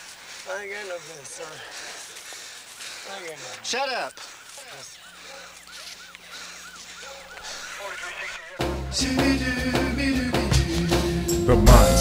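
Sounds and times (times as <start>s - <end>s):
high chirping squeaks: 3.7s - 8.6s.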